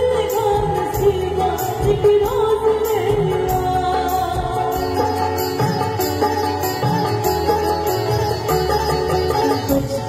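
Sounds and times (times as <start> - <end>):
sitar-like melody: 0.0 - 10.0.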